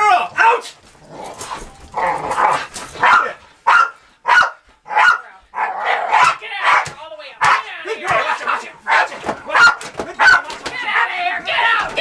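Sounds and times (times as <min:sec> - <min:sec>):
dog barking sharply: 0:03.0 - 0:07.6, 0:08.2 - 0:11.1.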